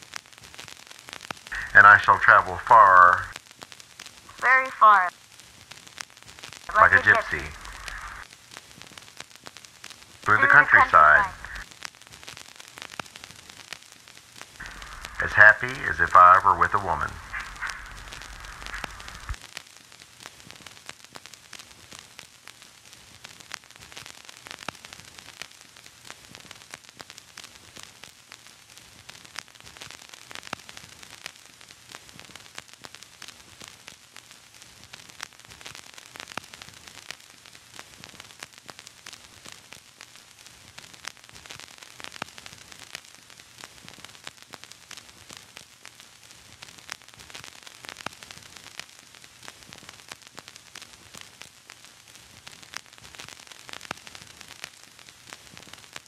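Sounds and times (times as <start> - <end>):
static hiss with pops and crackles: 0.0 - 56.0
low hum: 6.8 - 8.2, 14.6 - 19.4.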